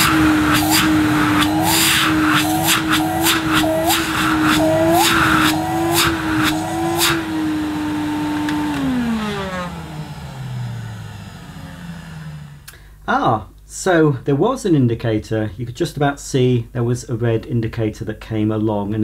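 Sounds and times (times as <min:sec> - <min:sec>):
motor winding down: 0:00.0 - 0:12.7
vacuum cleaner running: 0:00.0 - 0:12.7.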